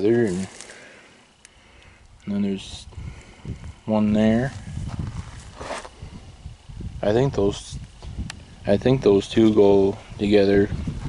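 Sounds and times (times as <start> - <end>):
breathy hiss: 0.2 - 6.8
wind rumble on microphone: 2.1 - 11.0.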